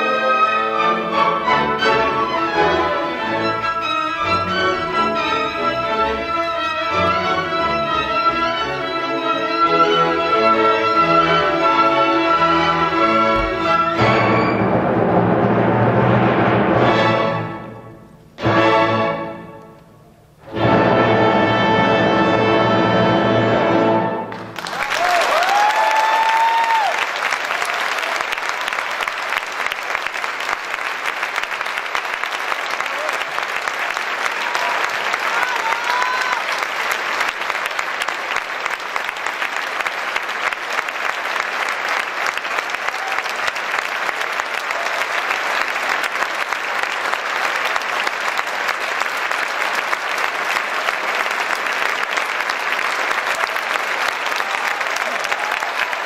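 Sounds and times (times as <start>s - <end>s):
audience applauding: 24.3s - 56.0s.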